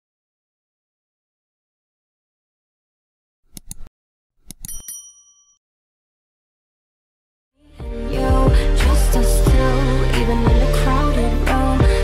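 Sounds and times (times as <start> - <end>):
mouse clicks: 3.5 - 4.8
bright bell ding: 4.6 - 5.6.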